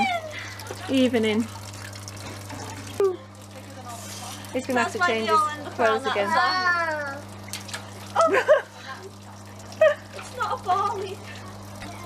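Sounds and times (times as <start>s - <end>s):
water sloshing and splashing: 7.2s - 12.0s.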